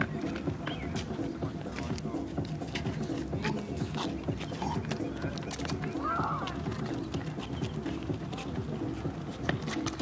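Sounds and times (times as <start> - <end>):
indistinct background voices: 0.0 - 10.0
sneaker footsteps on asphalt: 0.0 - 10.0.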